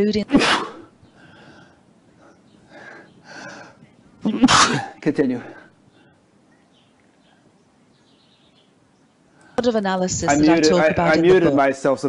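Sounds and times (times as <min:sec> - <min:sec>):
person sneezing: 0:00.3 - 0:00.9, 0:04.3 - 0:05.0.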